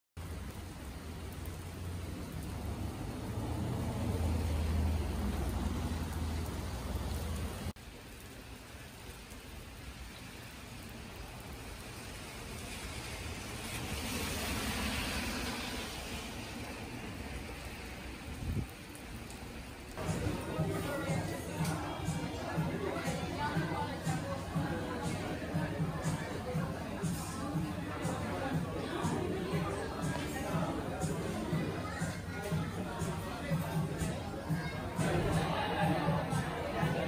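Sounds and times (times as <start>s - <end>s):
light rain hissing on wet road: 0.2s - 24.1s
low traffic rumble: 0.2s - 37.0s.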